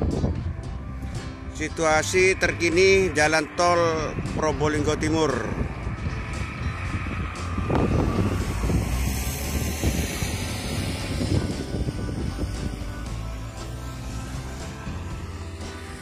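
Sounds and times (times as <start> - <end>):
vehicles passing: 0.0 - 16.0
wind rumbling on microphone: 0.0 - 16.0.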